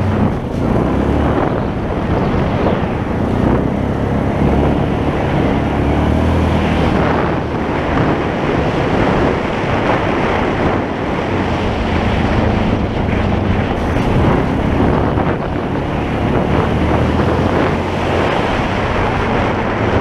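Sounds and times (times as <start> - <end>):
atv engine running: 0.0 - 20.0
wind noise on microphone: 0.0 - 20.0.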